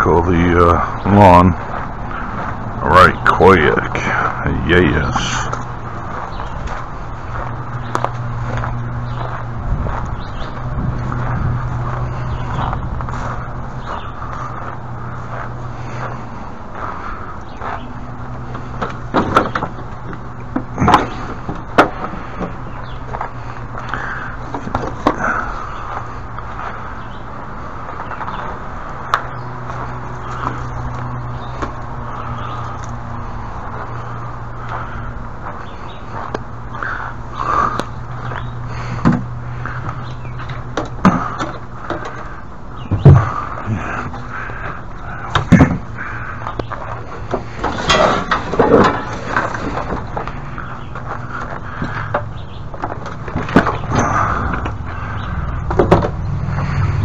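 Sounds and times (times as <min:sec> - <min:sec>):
steady low hum: 0:00.0 - 0:57.0
equipment knocks and scrapes: 0:47.2 - 0:50.4.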